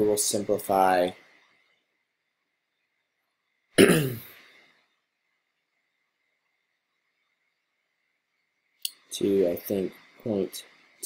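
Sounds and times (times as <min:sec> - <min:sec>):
man clearing his throat: 0:03.8 - 0:04.4.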